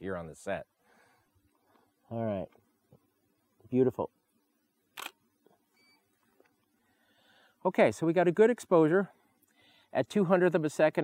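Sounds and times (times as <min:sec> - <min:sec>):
camera shutter clack: 0:05.0 - 0:05.2
faint short beep: 0:05.7 - 0:06.1.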